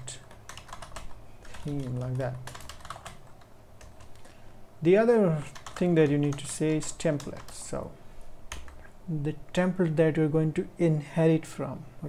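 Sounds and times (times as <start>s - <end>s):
computer keyboard keystrokes: 0.1s - 4.3s, 5.5s - 7.6s, 8.5s - 8.8s.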